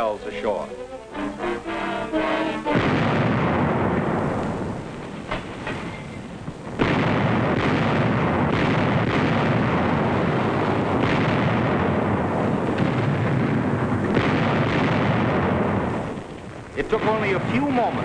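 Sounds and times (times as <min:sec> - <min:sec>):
artillery gunfire and shell bursts: 0:02.0 - 0:18.0.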